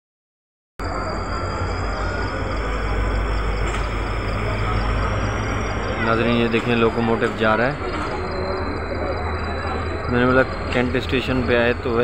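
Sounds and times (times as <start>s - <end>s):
locomotive engine rumbling: 0.8s - 12.0s.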